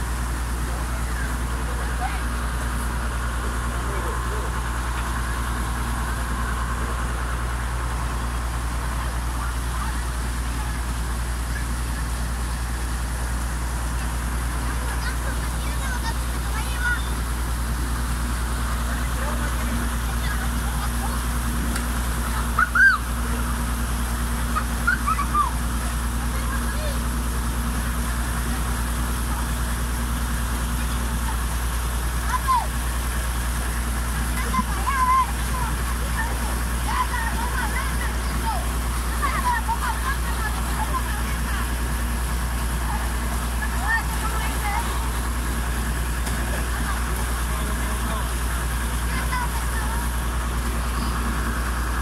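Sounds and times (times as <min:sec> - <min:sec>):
water rushing through channel: 0:00.0 - 0:52.0.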